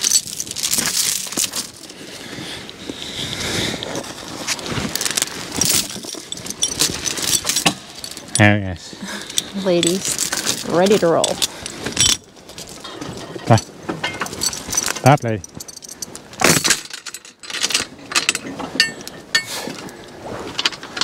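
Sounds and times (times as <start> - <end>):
metal chain clinking and rattling: 0.0 - 2.0, 3.8 - 21.0.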